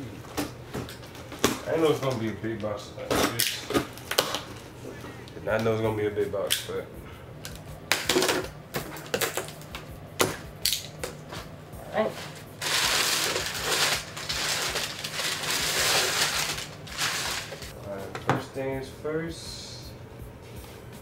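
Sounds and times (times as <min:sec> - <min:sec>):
packing paper rustling: 0:12.2 - 0:17.7
cardboard tearing: 0:12.6 - 0:17.7.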